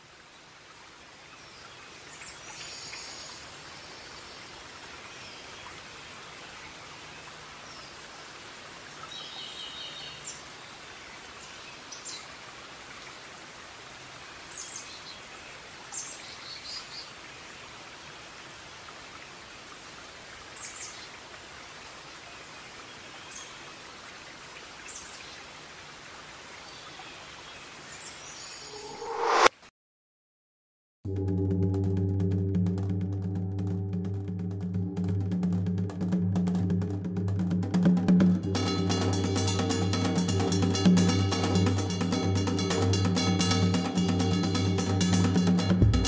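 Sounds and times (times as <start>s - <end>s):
soft outdoor hiss: 0.0s - 29.6s, 38.2s - 46.0s
high bird chirps: 28.4s - 29.5s.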